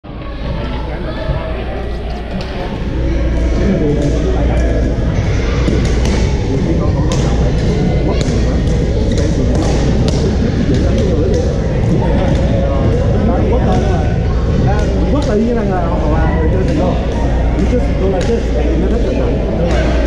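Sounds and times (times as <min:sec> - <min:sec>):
echoing chatter of players: 0:00.0 - 0:20.0.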